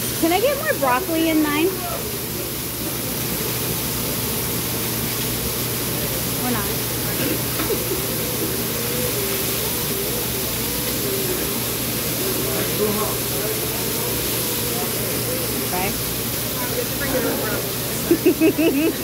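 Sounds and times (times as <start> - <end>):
faint voices: 0.0 - 19.0
food sizzling on a griddle: 0.0 - 19.0.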